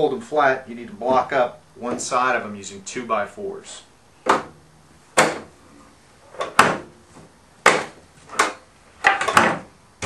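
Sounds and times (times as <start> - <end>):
table legs clacking on wood: 7.7 - 9.7.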